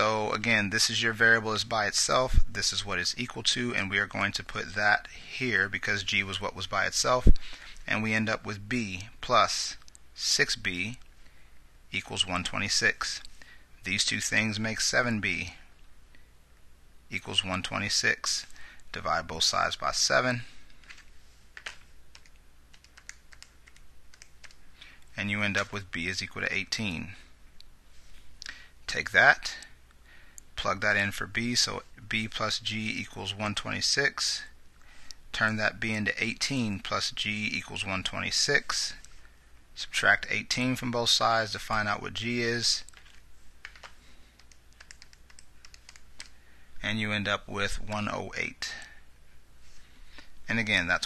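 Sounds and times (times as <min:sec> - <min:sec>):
calculator buttons clicking: 0:42.9 - 0:46.3.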